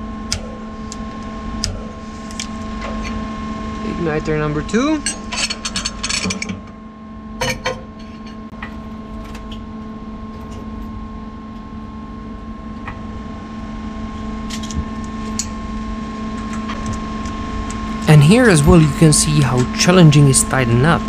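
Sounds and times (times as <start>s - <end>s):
machine hum: 0.0s - 21.0s.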